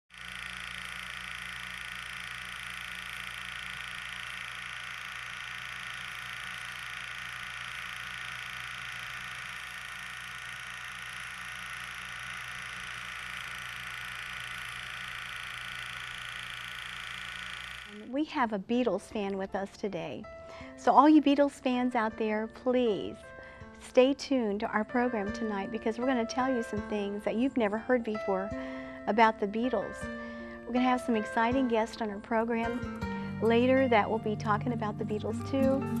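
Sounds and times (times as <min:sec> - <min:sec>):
low hum: 0:00.1 - 0:18.3
speech: 0:17.9 - 0:20.2, 0:20.8 - 0:23.2, 0:23.8 - 0:28.5, 0:29.1 - 0:30.0, 0:30.7 - 0:32.8, 0:33.4 - 0:35.8.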